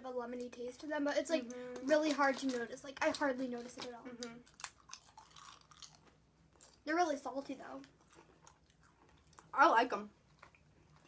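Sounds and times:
person speaking: 0.0 - 4.4
potato chips being chewed: 1.8 - 6.9, 7.8 - 9.6, 10.2 - 11.0.

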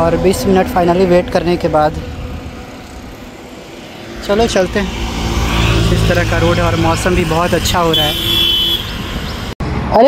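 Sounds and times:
road traffic drone: 0.0 - 10.0.

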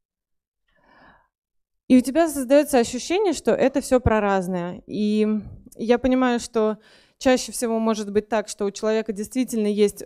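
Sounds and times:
woman breathing: 0.7 - 1.4, 6.8 - 7.2
woman speaking: 1.9 - 10.0.

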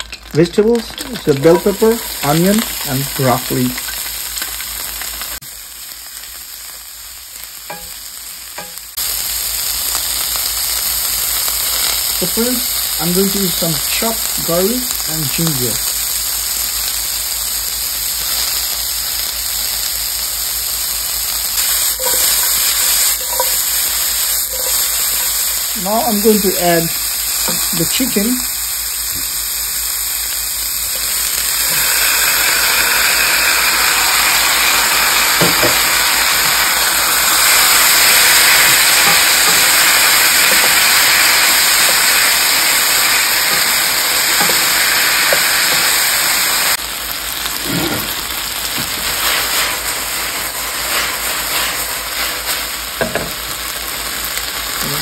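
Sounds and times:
food sizzling in frying pan: 0.0 - 55.0
spatula scraping and tapping pan: 22.0 - 23.7, 24.5 - 25.3.

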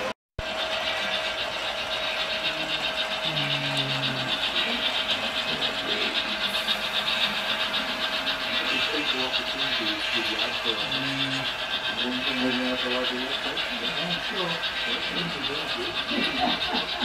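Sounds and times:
constant hum: 0.0 - 17.0
model steam locomotives hissing: 0.0 - 17.0
faint voices: 2.3 - 17.0.

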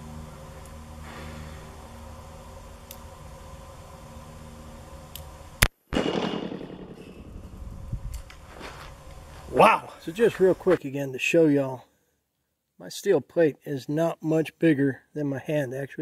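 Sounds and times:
gunshot echo: 5.9 - 7.5
revolver gunshot: 5.9 - 7.5.

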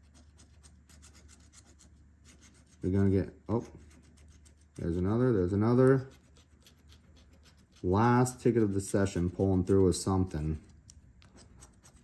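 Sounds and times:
coin scratching lottery ticket: 0.0 - 12.0.

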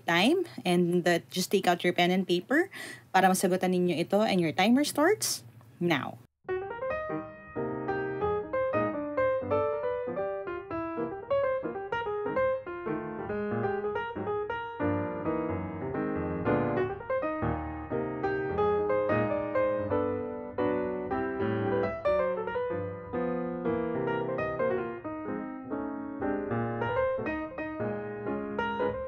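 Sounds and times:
person talking: 0.0 - 6.3
piano music: 6.4 - 29.0.

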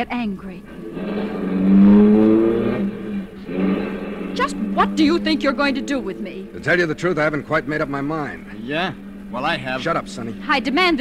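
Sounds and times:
steady low hum: 0.0 - 11.0
car engine accelerating: 0.4 - 11.0.

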